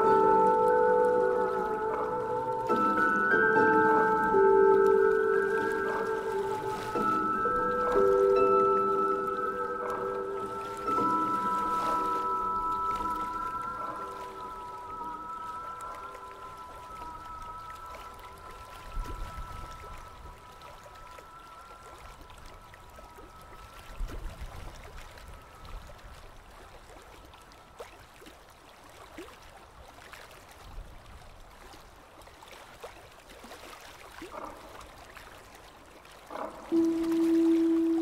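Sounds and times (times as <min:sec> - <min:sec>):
ambient music tones: 0:00.0 - 0:28.0, 0:34.2 - 0:38.0
water trickling and flowing: 0:00.0 - 0:38.0.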